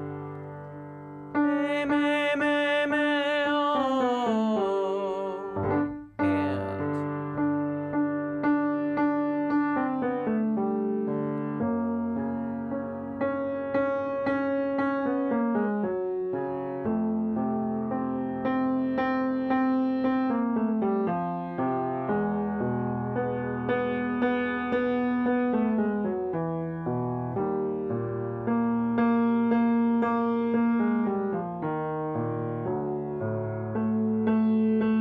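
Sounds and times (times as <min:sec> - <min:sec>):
grand piano chords: 0:00.0 - 0:35.0
tenor voice singing with vibrato: 0:01.5 - 0:07.1.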